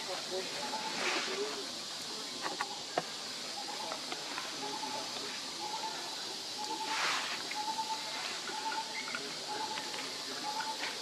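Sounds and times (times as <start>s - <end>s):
high insect hiss: 0.0s - 11.0s.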